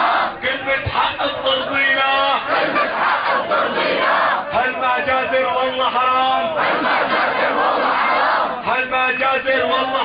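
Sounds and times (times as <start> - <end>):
crowd shouting and chanting: 0.0 - 10.0.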